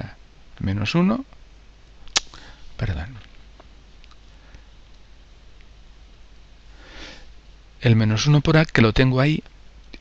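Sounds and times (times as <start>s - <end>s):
person speaking: 2.1s - 3.5s
person sniffing: 6.8s - 7.3s.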